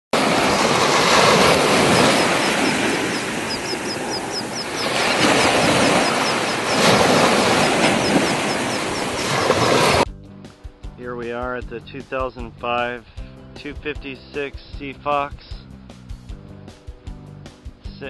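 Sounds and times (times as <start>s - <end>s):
surf washing on sandy beach: 0.2s - 10.1s
quick high chirps: 1.7s - 9.6s.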